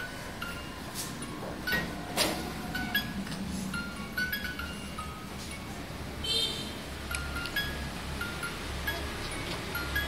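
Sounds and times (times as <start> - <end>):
music box plinking tune: 0.0 - 2.1, 2.7 - 5.8, 7.1 - 10.0.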